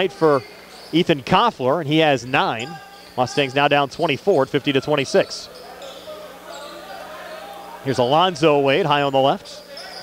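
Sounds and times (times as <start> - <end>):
faint court sounds: 0.0 - 10.0
crowd murmur: 4.8 - 8.7.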